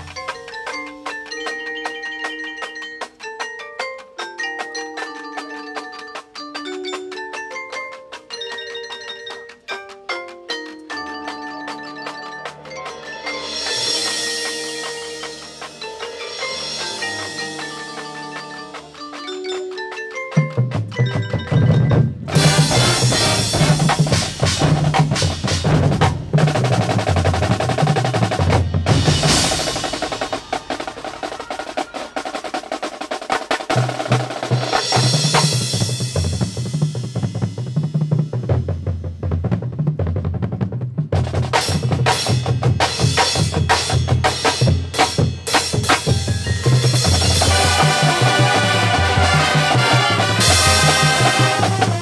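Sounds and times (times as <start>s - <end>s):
snare drum rolls: 4.7s - 52.0s.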